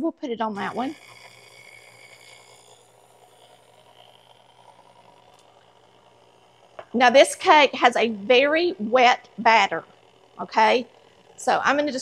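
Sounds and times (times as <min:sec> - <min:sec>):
faint high whine: 0:00.0 - 0:12.0
stand mixer humming: 0:00.0 - 0:12.0.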